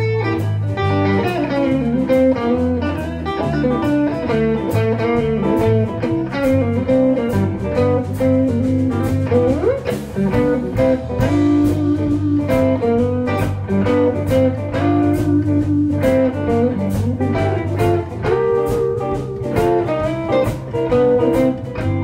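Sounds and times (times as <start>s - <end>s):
blues band playing: 0.0s - 22.0s
lead guitar note gliding upward: 0.0s - 22.0s.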